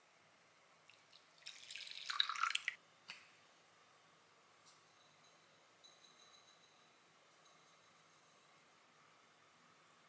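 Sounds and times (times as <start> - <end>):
liquid trickle and splash: 0.9 - 2.8.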